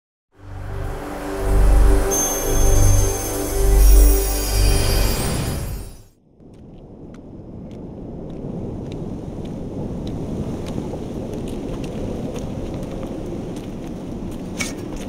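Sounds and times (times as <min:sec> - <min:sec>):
low rumble: 0:00.4 - 0:10.5.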